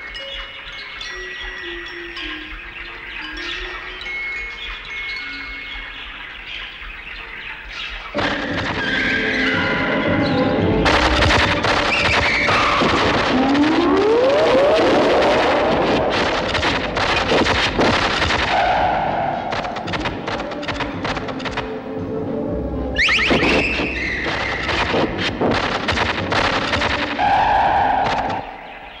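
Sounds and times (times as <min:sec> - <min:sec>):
experimental music with clicks: 0:07.8 - 0:21.8, 0:23.0 - 0:28.5
rising gliding tones: 0:12.1 - 0:17.8.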